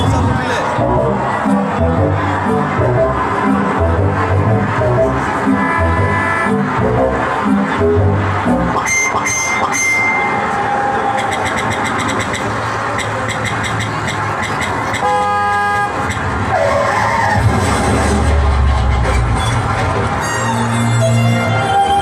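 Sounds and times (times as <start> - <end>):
stage soundtrack music: 0.0 - 10.5, 17.2 - 22.0
traffic sound effects: 0.0 - 22.0
vehicle horn: 5.0 - 7.2, 8.8 - 10.5, 15.0 - 17.4.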